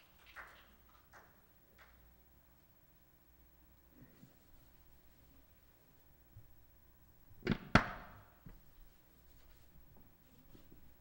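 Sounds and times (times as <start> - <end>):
cloth rubbing on microphone: 8.6 - 11.0.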